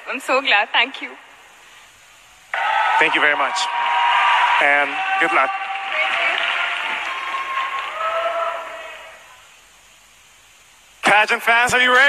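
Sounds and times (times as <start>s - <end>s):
drawn-out shouts: 2.5s - 9.4s
audience cheering and applauding: 2.5s - 9.5s.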